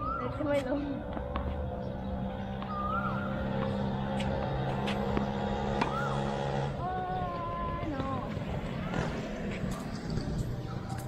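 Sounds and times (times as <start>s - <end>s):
motor vehicle engine hum: 0.0s - 11.0s.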